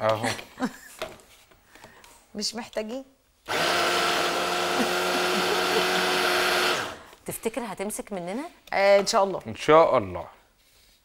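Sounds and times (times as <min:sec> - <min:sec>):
electric food chopper whining: 0:03.5 - 0:07.1.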